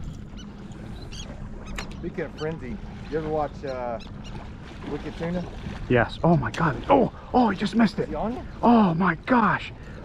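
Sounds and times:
low rumble of wind and water: 0.0 - 10.0
seabird calls: 0.0 - 10.0.

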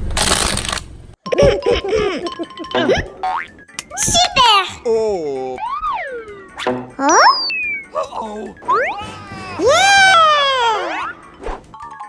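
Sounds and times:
squeaky gibberish voices: 5.3 - 9.7
cartoon sound effects: 5.6 - 11.3.

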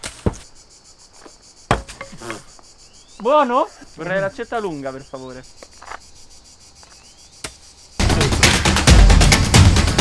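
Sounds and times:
hatchet thudding into target: 1.7 - 2.2.

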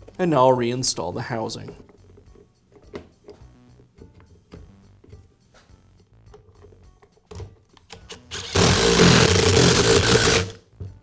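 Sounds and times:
small electric motor whirring: 8.2 - 10.6.

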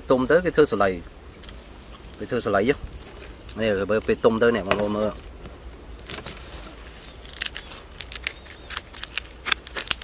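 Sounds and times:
knife peeling dry husk: 7.0 - 10.0.

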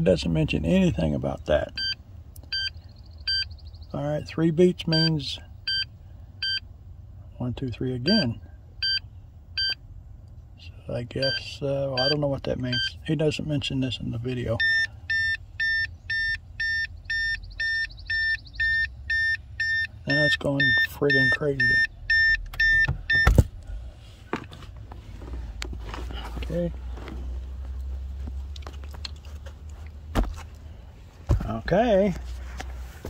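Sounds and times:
steady high beeps: 1.8 - 3.6, 11.2 - 13.0, 14.6 - 23.3.

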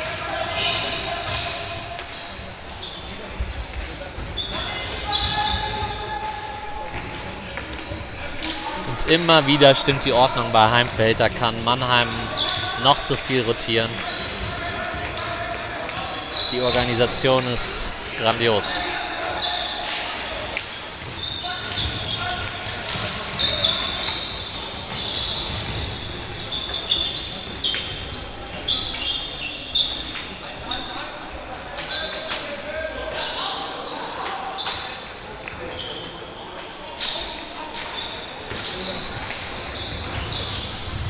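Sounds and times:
shoes squeaking on court floor: 0.0 - 41.0
voices calling out: 4.2 - 41.0.

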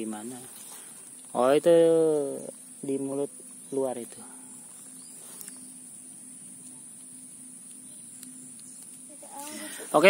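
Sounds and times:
insect chirring: 0.0 - 10.0.

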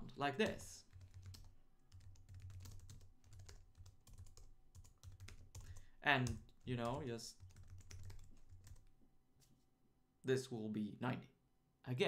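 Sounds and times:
computer keyboard typing: 0.4 - 8.9.

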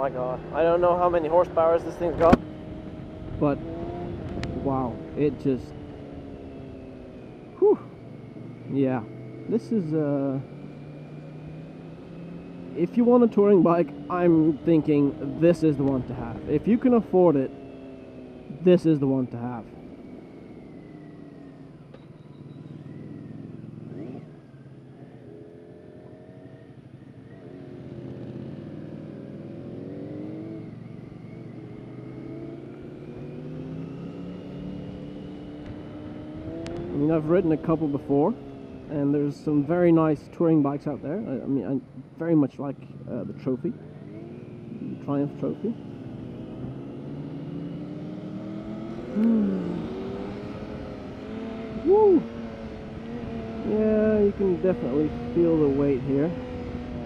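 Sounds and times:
motorcycle engine running: 19.7 - 39.8, 42.8 - 57.0.

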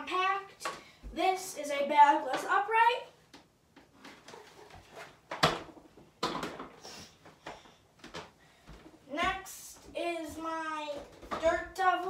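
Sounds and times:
footsteps on a wooden floor: 7.3 - 11.5.

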